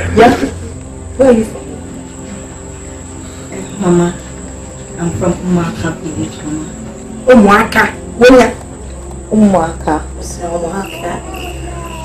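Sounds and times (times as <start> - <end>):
faint background music: 0.0 - 12.0
high-pitched whine: 0.0 - 12.0.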